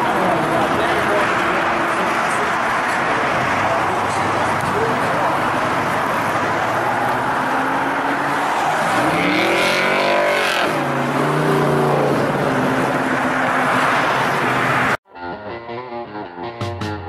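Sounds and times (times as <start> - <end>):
car engine revving: 0.0 - 15.0.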